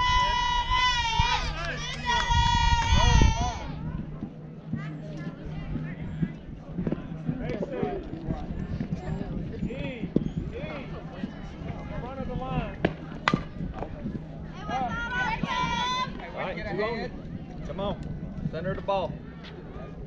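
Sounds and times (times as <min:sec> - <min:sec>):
voices chattering: 0:00.0 - 0:20.0.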